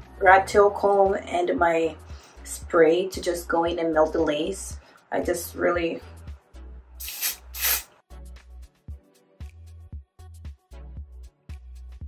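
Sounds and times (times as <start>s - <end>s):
background music with steady beat: 0.0s - 12.0s
spray can hissing: 7.0s - 7.9s.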